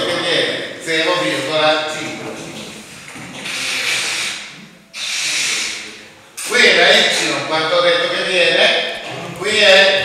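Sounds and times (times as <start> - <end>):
eraser wiping chalkboard: 2.6 - 5.9.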